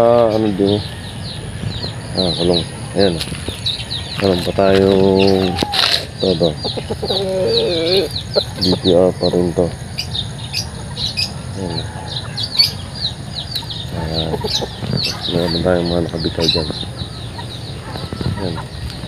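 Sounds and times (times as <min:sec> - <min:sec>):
chickens clucking: 0:00.0 - 0:19.0
small birds chirping: 0:00.0 - 0:19.0.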